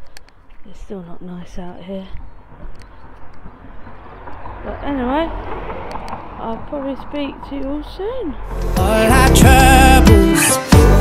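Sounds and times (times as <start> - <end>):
faint clicks: 0.0 - 0.6, 2.1 - 3.6.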